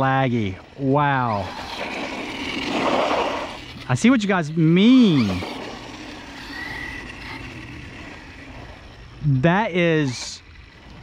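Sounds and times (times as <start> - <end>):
toy truck driving on pavement: 0.0 - 11.0.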